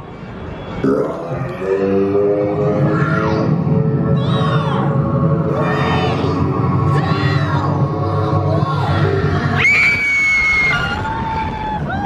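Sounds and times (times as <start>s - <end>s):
loud ride music: 0.8s - 11.4s.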